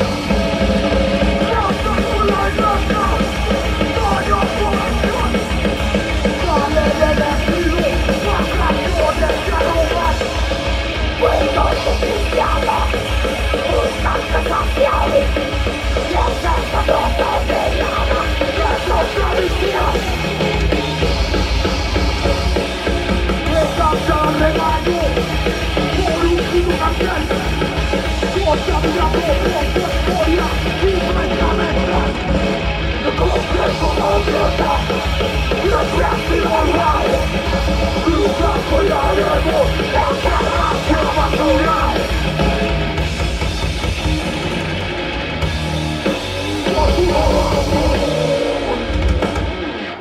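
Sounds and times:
pounding bass drum: 0.0s - 49.8s
thrash metal band playing: 0.0s - 50.0s.

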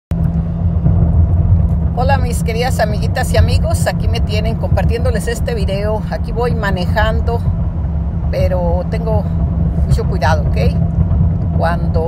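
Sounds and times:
car road and engine noise: 0.1s - 12.0s.

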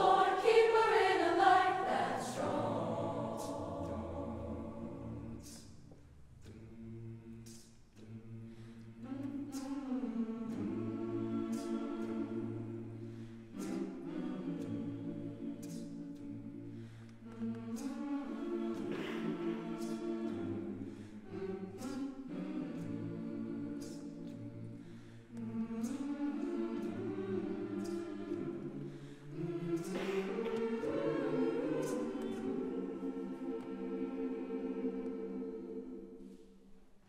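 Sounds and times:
mixed choir singing a cappella: 0.0s - 36.8s.

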